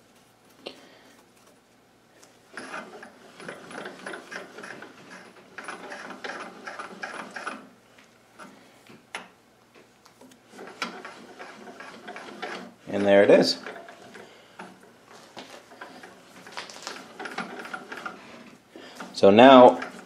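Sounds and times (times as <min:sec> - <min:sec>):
metallic clicks of lathe crank: 0:19.0 - 0:20.0.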